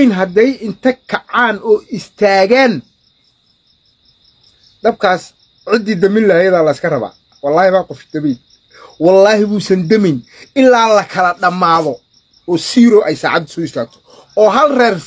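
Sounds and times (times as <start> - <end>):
man speaking: 0.0 - 2.9, 4.8 - 15.0.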